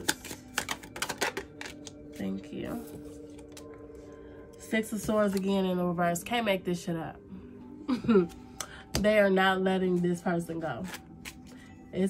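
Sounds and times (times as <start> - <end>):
cards being shuffled: 0.0 - 1.9, 10.8 - 11.6.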